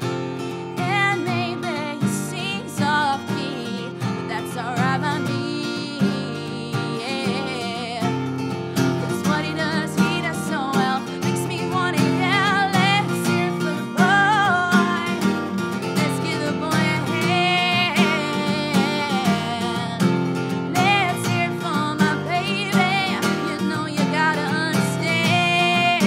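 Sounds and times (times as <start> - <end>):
strummed acoustic guitar: 0.0 - 26.0
woman singing pop vocals: 0.7 - 26.0.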